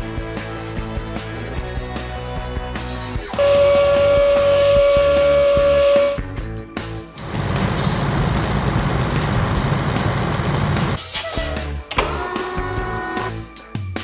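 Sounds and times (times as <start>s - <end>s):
background music: 0.0s - 14.0s
horn holding a note: 3.4s - 6.3s
truck engine rumble: 7.1s - 12.0s.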